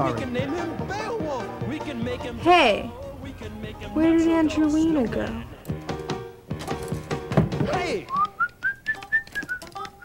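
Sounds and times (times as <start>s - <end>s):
person whistling a tune: 8.0s - 10.0s.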